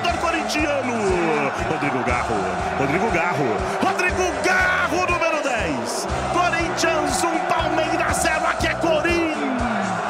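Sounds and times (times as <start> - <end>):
radio commentator shouting goal call: 0.0 - 9.8
background music: 0.0 - 10.0.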